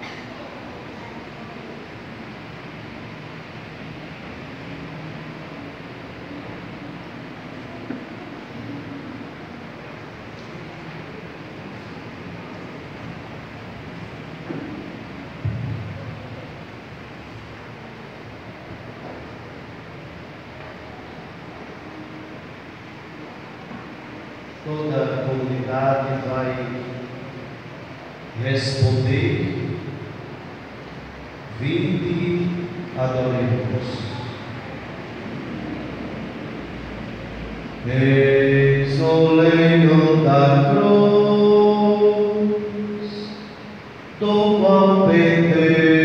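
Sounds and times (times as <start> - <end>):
church interior ambience: 0.0 - 46.0.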